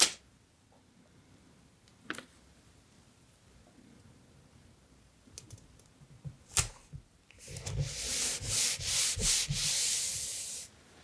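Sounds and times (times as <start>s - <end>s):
rubbing on paper: 7.4s - 10.7s.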